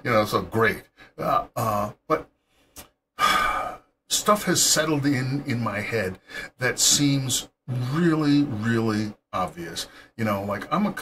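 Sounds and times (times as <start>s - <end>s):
man speaking: 0.0s - 2.3s, 4.1s - 11.0s.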